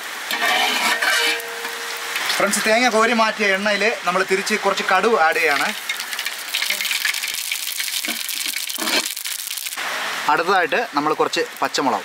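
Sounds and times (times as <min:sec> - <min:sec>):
food sizzling in hot oil: 0:00.0 - 0:09.8.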